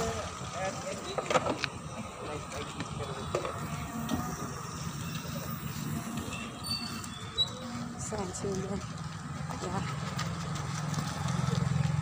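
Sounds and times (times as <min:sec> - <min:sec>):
small engine running: 0:01.8 - 0:12.0.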